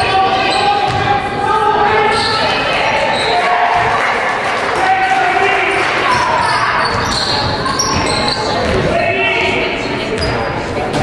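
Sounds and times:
people calling out: 0.0s - 9.8s.

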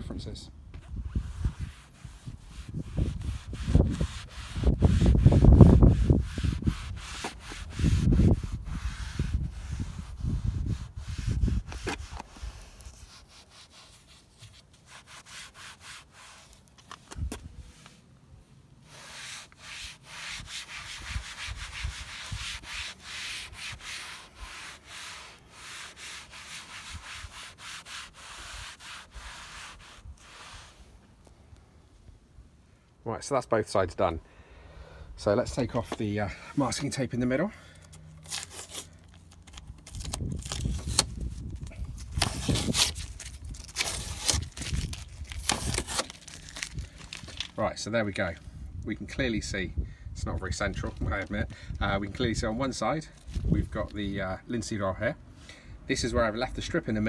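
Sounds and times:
foam pad rubbing plastic: 0.9s - 16.8s, 18.8s - 30.9s, 38.3s - 47.6s.

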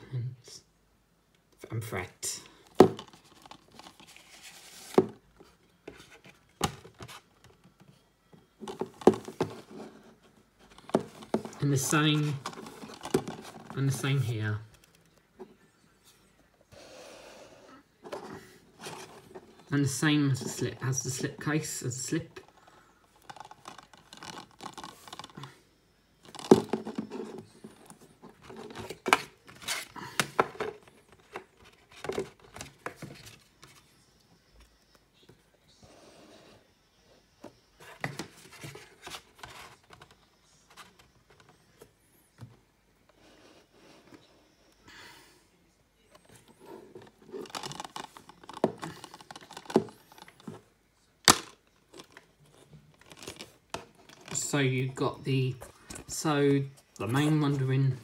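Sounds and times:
plastic case rustling and scraping: 2.6s - 7.9s, 8.6s - 15.1s, 18.0s - 21.4s, 22.3s - 25.5s, 26.2s - 33.9s, 37.8s - 41.9s, 46.2s - 50.7s, 51.3s - 58.0s.

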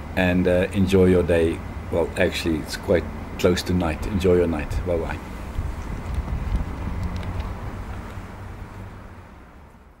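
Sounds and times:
low rumble and hiss: 0.0s - 10.0s
wind on microphone: 4.7s - 8.1s.

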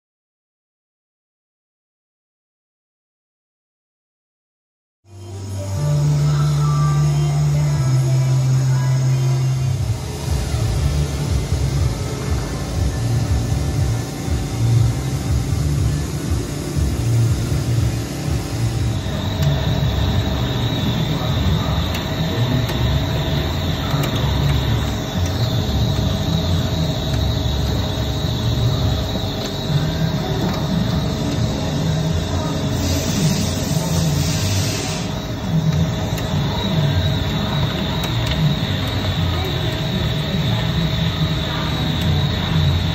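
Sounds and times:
music playing: 5.1s - 42.9s
steady high tone: 5.1s - 42.9s
lathe cutting rumble: 5.4s - 42.9s.

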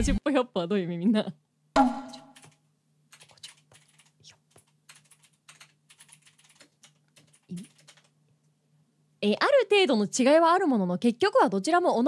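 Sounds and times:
typing on computer keyboard: 2.3s - 8.2s.

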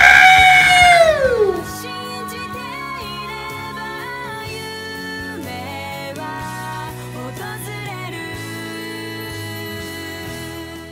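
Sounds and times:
long vocal cry: 0.0s - 1.9s
background music: 0.0s - 10.9s.

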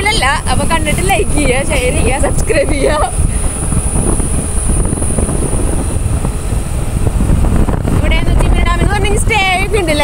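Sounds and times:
motorcycle running: 0.0s - 10.0s
wind buffeting microphone: 0.0s - 10.0s.

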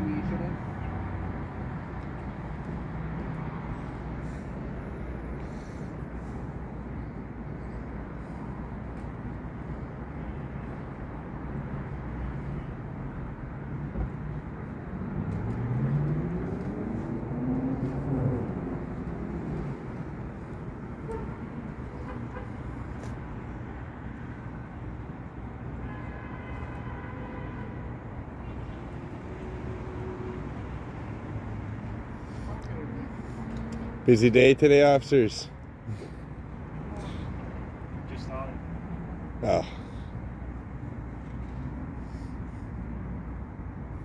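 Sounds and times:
traffic hum: 0.0s - 44.0s
vehicle engine accelerating past: 15.0s - 19.8s.

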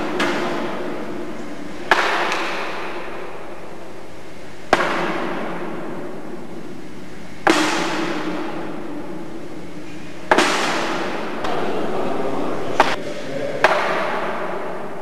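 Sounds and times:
steady hiss: 0.0s - 15.0s.

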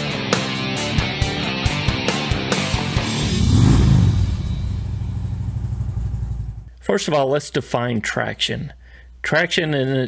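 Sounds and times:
motorcycle engine idling: 4.4s - 6.7s.

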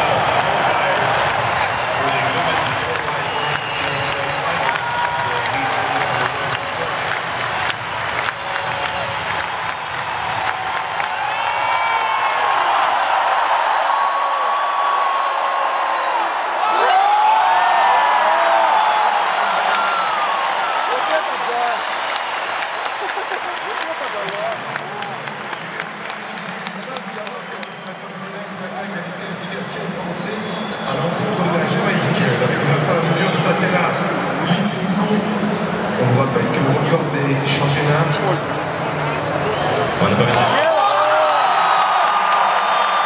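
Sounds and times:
crowd applauding and cheering: 0.0s - 43.0s.

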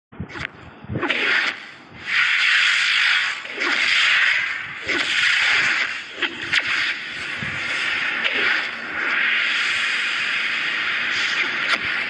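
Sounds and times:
hissing swooshes: 0.3s - 12.0s.

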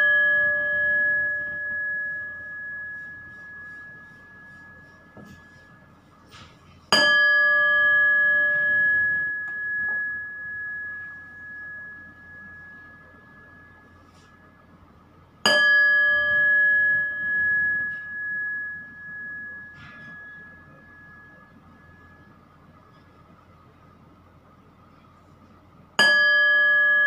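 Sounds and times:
small metal bell ringing: 0.0s - 5.9s, 6.9s - 14.8s, 15.4s - 22.5s, 26.0s - 27.0s.

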